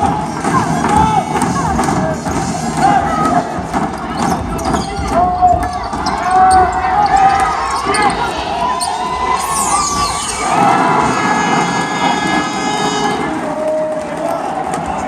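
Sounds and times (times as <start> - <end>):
voices shouting: 2.8 - 14.6
basketball bouncing on court: 3.2 - 8.3.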